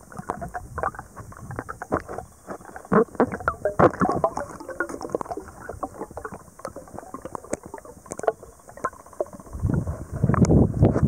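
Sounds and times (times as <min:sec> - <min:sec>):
small irregular clicks and knocks: 0:00.0 - 0:10.6
underwater bubbling: 0:00.0 - 0:11.0.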